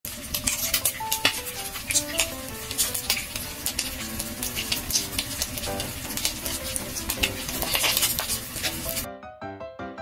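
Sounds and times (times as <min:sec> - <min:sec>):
tempura frying in oil: 0:00.0 - 0:09.1
soft melody: 0:00.3 - 0:10.0.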